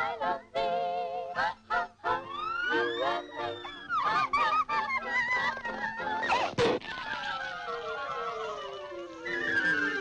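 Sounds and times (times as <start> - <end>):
cartoon mice squeaking: 2.9 - 10.0.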